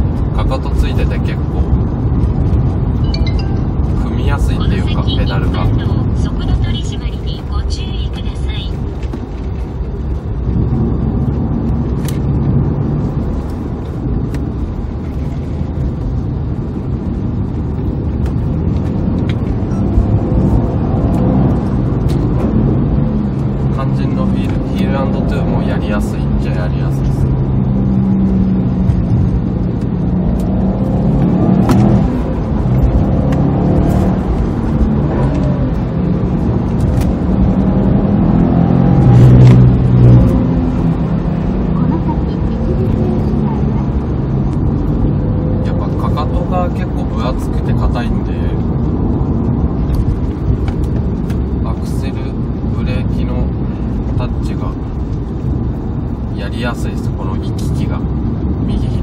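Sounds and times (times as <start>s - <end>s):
car engine revving while driving: 8.8s - 59.0s.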